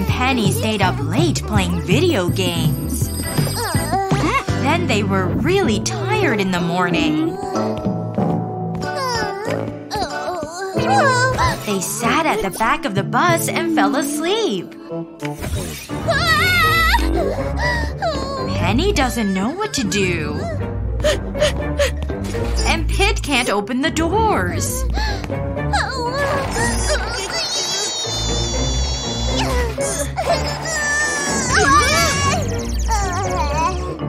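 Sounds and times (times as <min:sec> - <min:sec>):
background music: 0:00.0 - 0:34.0
cartoon character whining cry: 0:27.3 - 0:34.0.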